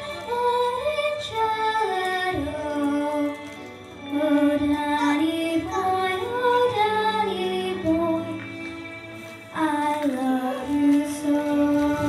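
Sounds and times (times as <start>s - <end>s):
girl singing into a microphone: 0.0s - 8.6s, 9.5s - 12.0s.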